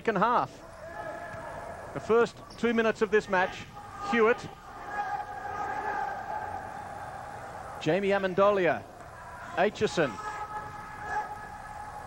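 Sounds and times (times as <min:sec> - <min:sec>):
hall background noise: 0:00.0 - 0:12.0.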